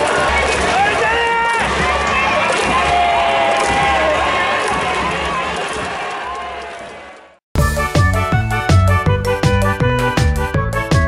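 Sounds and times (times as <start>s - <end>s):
stadium crowd cheering: 0.0s - 7.4s.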